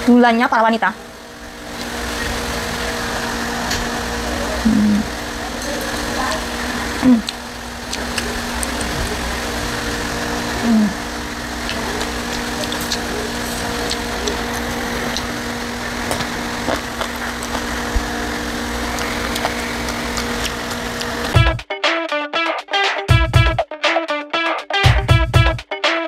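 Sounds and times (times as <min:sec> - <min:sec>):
steady mechanical hum: 0:00.0 - 0:21.6
woman humming while chewing: 0:04.6 - 0:05.1, 0:07.0 - 0:07.4, 0:10.6 - 0:11.1
faint eating clicks: 0:07.0 - 0:09.2, 0:11.6 - 0:15.4, 0:18.9 - 0:21.4
strummed guitar music: 0:19.0 - 0:26.0.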